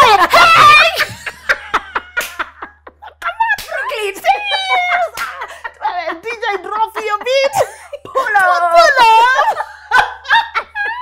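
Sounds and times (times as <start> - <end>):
women laughing: 0.0 - 11.0.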